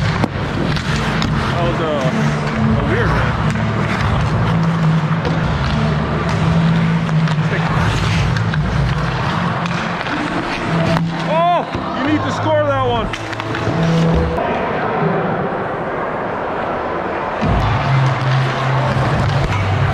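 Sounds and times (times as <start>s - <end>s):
skate blades scraping on ice: 0.0s - 12.4s, 13.0s - 14.4s
hockey sticks and puck clacking: 0.0s - 14.6s, 17.4s - 19.9s.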